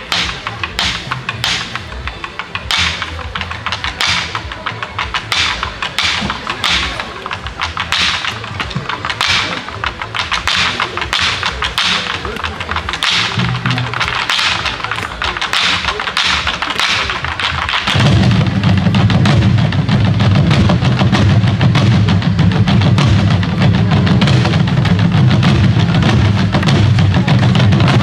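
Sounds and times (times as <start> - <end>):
heavy low drum strokes: 0.0 - 28.0
hourglass drums struck with sticks: 0.0 - 28.0.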